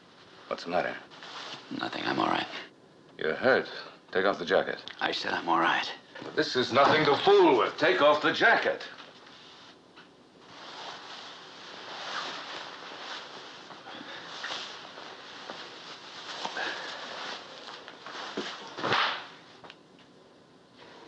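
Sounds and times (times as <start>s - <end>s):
clothing rustling: 1.1s - 1.8s, 10.4s - 19.6s
fabric swishes and scuffs: 10.4s - 19.2s.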